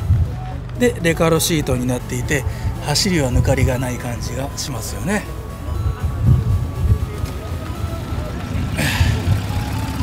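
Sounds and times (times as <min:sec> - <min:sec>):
faint voices: 0:00.0 - 0:10.0
wind buffeting microphone: 0:05.8 - 0:07.8.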